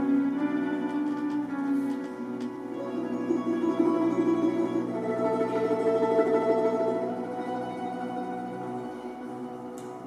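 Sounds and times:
folk instrument ensemble playing: 0.0 - 10.0.

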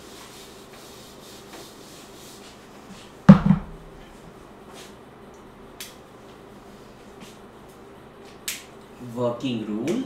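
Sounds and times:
eraser rubbing on whiteboard: 0.0 - 2.7.

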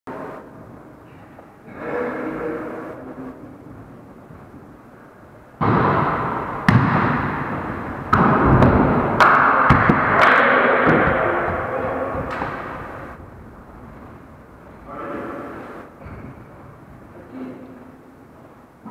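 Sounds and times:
loud continuous rushing noise: 0.1 - 17.6
hands smacking volleyball: 8.1 - 13.0.

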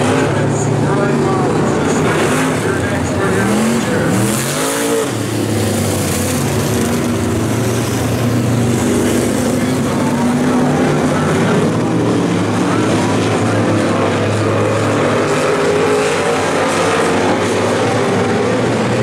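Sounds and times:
race car engines roaring: 0.0 - 19.0.

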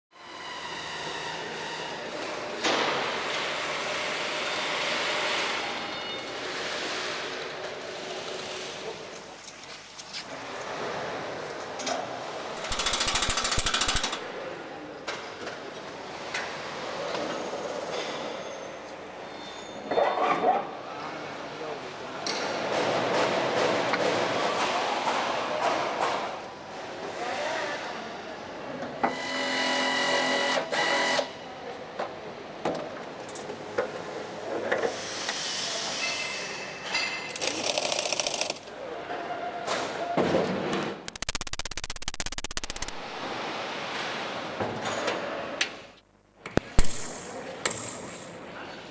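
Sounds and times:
tools and metal parts clattering: 12.6 - 14.2.

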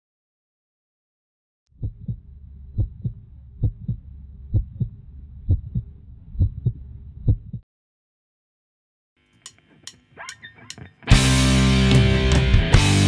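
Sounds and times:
heartbeat thumps: 1.8 - 7.6
low hum: 1.8 - 7.6.

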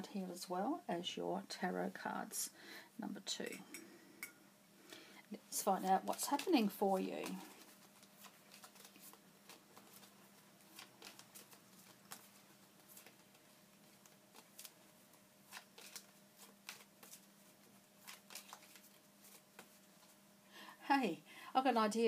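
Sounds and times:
low steady hum: 0.0 - 22.0
cards being shuffled: 5.8 - 20.2.

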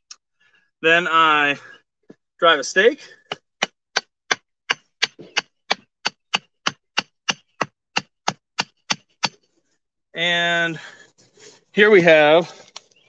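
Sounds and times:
hammer driving stake into soil: 3.0 - 9.5.

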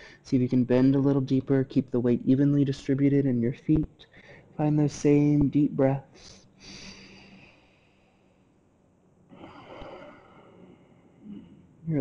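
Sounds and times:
person breathing deeply: 0.0 - 0.2, 6.2 - 8.5, 9.3 - 11.7.

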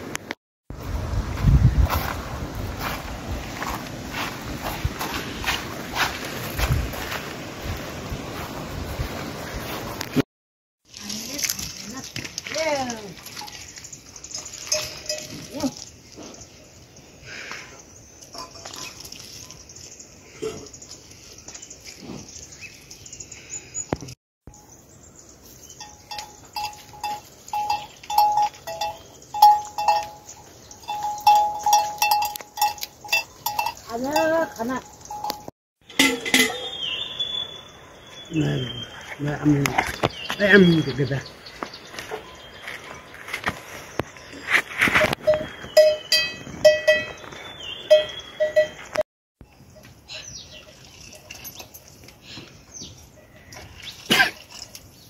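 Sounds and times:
livestock bells clanking: 12.6 - 16.0, 18.3 - 19.1, 25.8 - 36.8, 45.1 - 49.0, 50.5 - 52.1.

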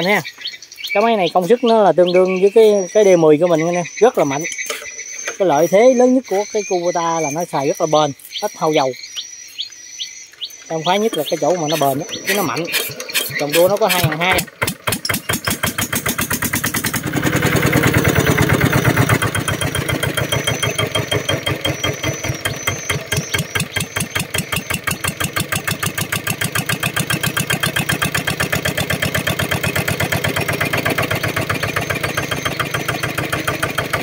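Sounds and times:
diesel engine popping exhaust: 10.0 - 34.0.

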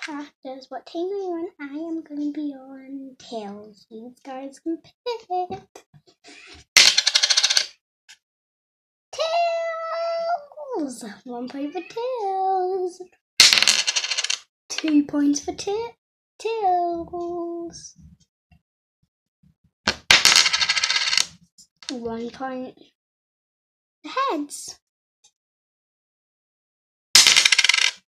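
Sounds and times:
coin clattering on hard surface: 6.8 - 7.7, 13.4 - 14.4, 20.1 - 21.3, 27.2 - 28.0.

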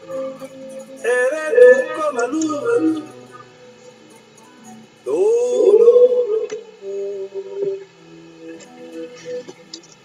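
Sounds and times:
person singing a hymn: 0.0 - 4.0, 5.0 - 9.8
soft background music: 0.0 - 10.0.

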